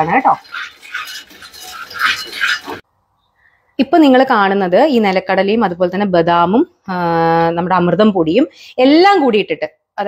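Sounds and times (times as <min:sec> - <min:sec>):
spatula scraping nuts in pan: 0:00.0 - 0:02.8.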